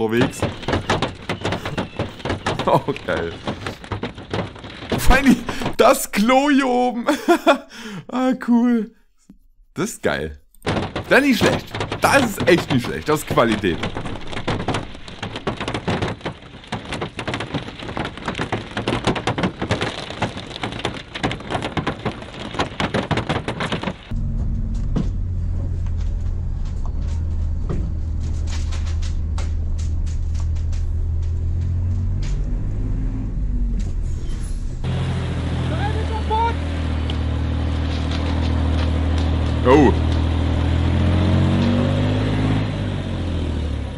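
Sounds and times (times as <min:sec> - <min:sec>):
fireworks crackling bangs: 0:00.0 - 0:07.6, 0:10.6 - 0:24.4, 0:34.8 - 0:43.9
scattered pops: 0:00.0 - 0:07.6, 0:09.2 - 0:24.1
steady low rumble: 0:24.1 - 0:34.9.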